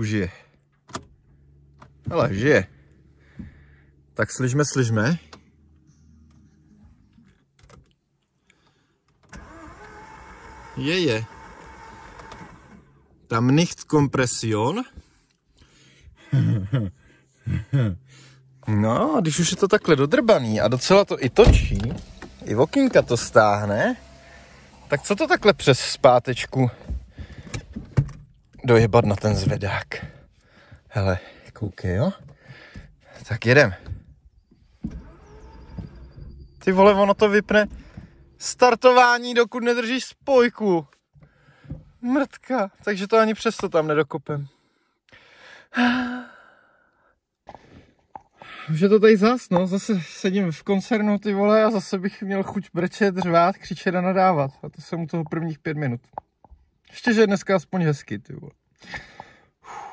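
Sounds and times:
starter motor cranking engine: 9.2s - 13.4s, 19.4s - 28.0s, 32.4s - 38.8s.

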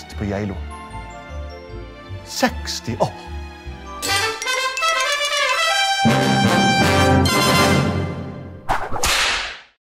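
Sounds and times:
music: 0.0s - 8.6s.

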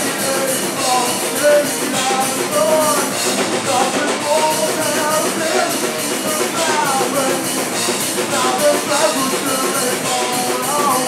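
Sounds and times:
live metal band playing: 0.0s - 11.0s.

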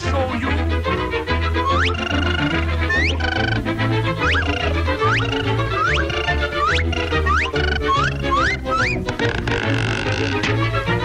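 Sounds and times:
orchestral cartoon music: 0.0s - 11.0s
rising whistle-like glide: 1.6s - 3.6s, 4.2s - 8.9s.

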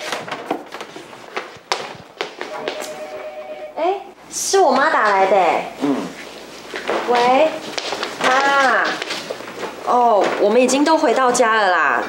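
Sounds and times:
steady held tone: 2.5s - 4.2s.

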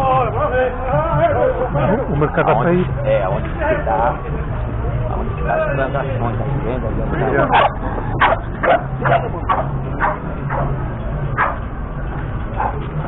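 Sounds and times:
street chatter: 0.0s - 13.0s
dog barking: 7.5s - 10.8s, 11.4s - 11.6s, 12.6s - 12.8s.

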